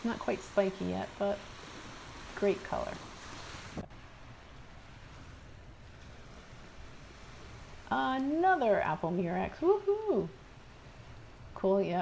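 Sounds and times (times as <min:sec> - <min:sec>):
water lapping over sand: 0:00.0 - 0:11.6.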